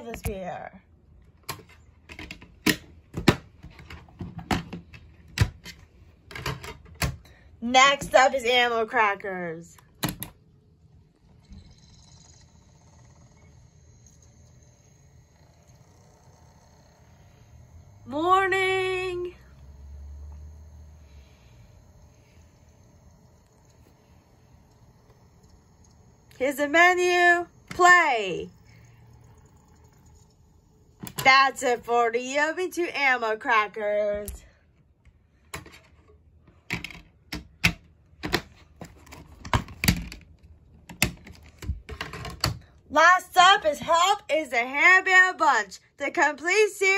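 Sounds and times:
disc drive whirring and whining: 0:19.0 - 0:31.3.

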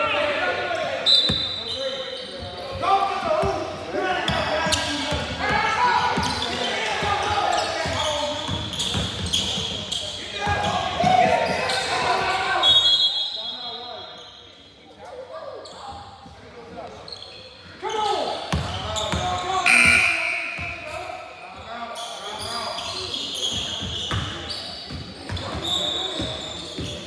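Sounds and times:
people shouting: 0:19.7 - 0:20.7.

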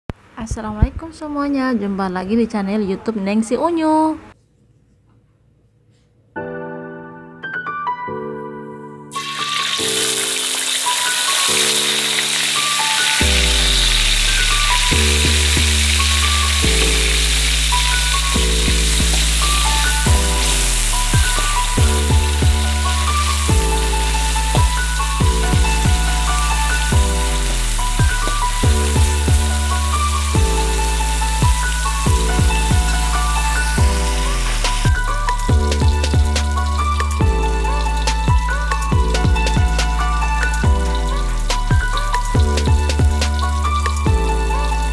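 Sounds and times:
background music: 0:06.4 - 0:44.9
vegetables sizzling in hot oil: 0:09.2 - 0:44.9.

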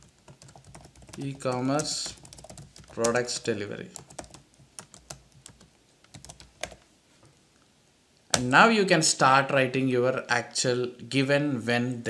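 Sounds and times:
keyboard keys clicking: 0:00.0 - 0:03.2, 0:04.0 - 0:06.8.

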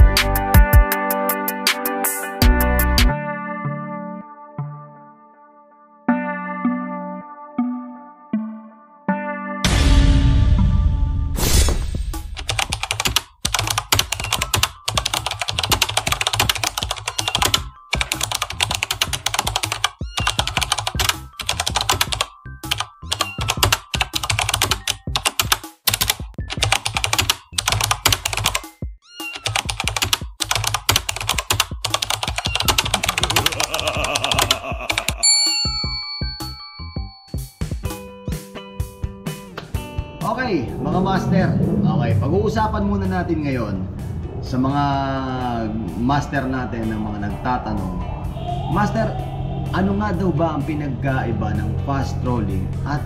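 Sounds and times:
background music: 0:00.0 - 0:53.0
fast keyboard typing: 0:12.4 - 0:35.2.

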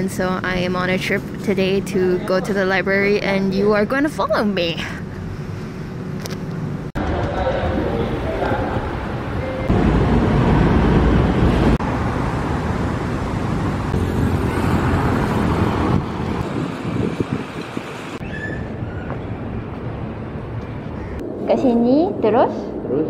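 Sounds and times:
road traffic rush: 0:00.0 - 0:23.0.

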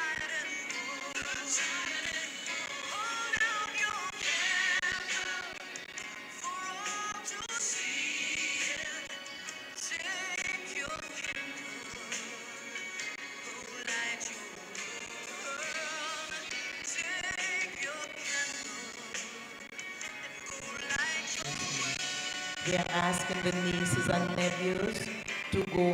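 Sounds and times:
person singing with vibrato: 0:00.0 - 0:05.8, 0:06.4 - 0:25.9
instrumental accompaniment: 0:20.9 - 0:25.9.

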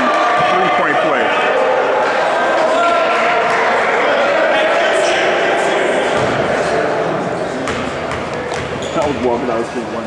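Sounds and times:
indoor crowd chatter: 0:00.0 - 0:10.0.

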